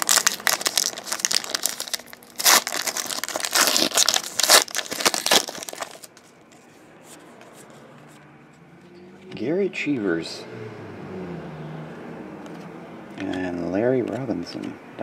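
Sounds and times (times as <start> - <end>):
wrapper tearing and crinkling: 0.0 - 6.2.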